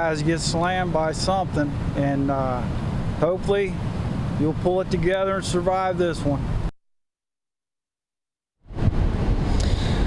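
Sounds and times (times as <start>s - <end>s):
rough surf rushing: 0.0s - 6.7s, 8.7s - 10.0s
wind buffeting microphone: 8.7s - 10.0s.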